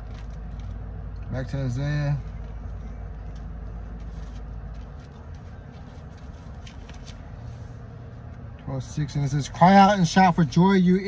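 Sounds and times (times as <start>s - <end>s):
air conditioning running: 0.0s - 11.0s
car engine idling: 0.0s - 11.0s.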